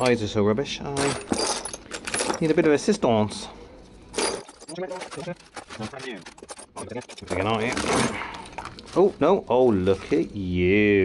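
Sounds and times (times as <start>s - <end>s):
metal parts clinking in drawer: 0.0s - 0.2s, 1.0s - 2.9s, 4.1s - 9.0s.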